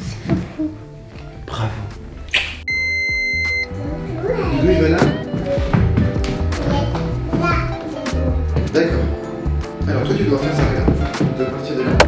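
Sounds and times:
background music: 0.0 - 12.0
high-pitched electronic beep: 2.7 - 3.7.

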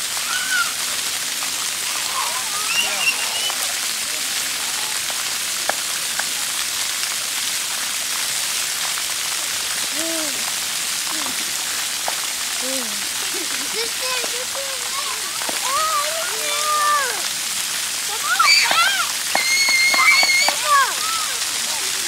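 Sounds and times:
fountain jets spraying: 0.0 - 22.0
water falling on wet concrete: 0.0 - 22.0.

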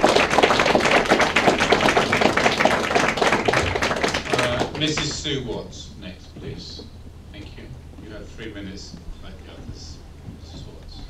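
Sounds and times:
audience applauding: 0.0 - 5.5.

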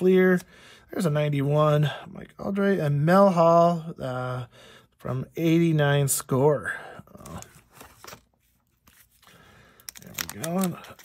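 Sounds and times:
cards rustling: 7.1 - 11.0.

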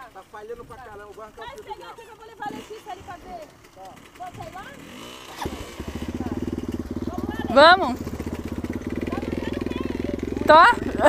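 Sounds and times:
dirt bike engine idling: 0.0 - 11.0.

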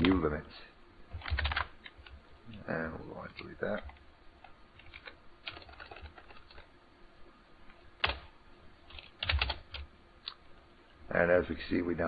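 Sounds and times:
computer keyboard typing: 1.1 - 2.2, 3.4 - 6.7, 8.0 - 8.3, 8.9 - 10.4.

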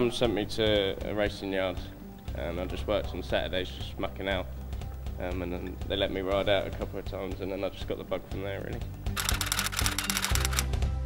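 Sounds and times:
background music: 0.0 - 11.0
typewriter-like clicks: 9.2 - 10.8.

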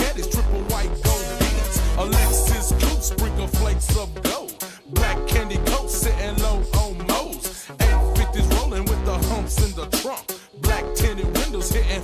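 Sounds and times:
hip hop beat with deep bass: 0.0 - 12.0
person rapping: 0.0 - 12.0.

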